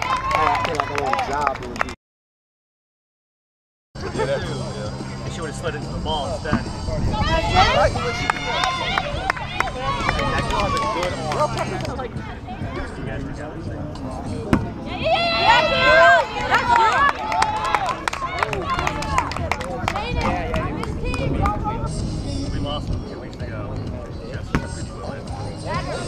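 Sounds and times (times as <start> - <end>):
kickball kicked thump: 6.5 - 6.7, 24.5 - 24.8
players shouting: 7.1 - 11.7, 14.6 - 19.3.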